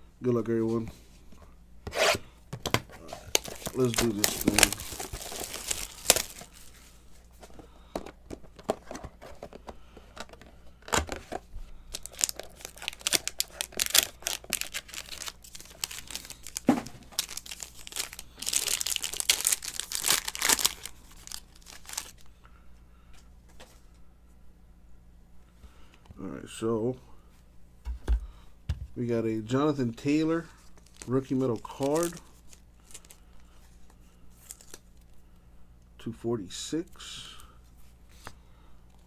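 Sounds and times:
cardboard packaging rustling: 2.0s - 22.3s, 30.6s - 33.2s
foil pack crinkling and tearing: 3.2s - 6.9s, 11.8s - 22.3s, 30.6s - 33.4s, 34.4s - 35.1s.

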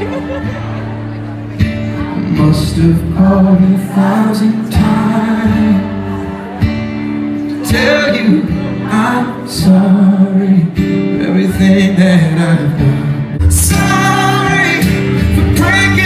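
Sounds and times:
person singing live through pa: 0.0s - 16.0s
strummed acoustic guitar: 0.0s - 16.0s.

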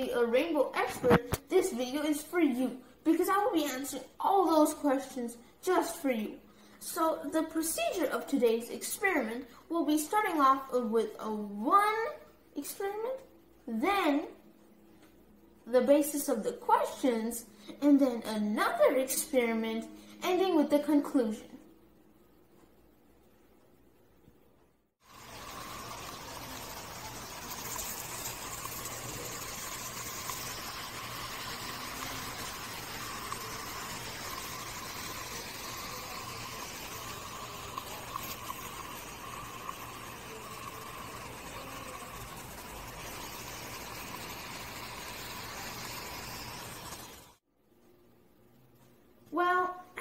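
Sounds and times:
water spraying: 25.1s - 47.4s.

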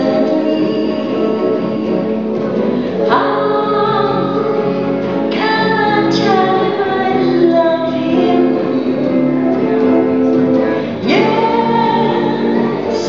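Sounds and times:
woman singing: 0.0s - 2.3s, 2.9s - 13.0s
electric guitars: 0.0s - 13.0s.

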